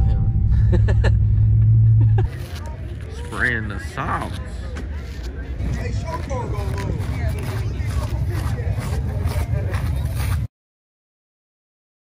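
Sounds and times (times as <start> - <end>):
low rumble: 0.0 - 4.8
people talking: 2.2 - 10.5.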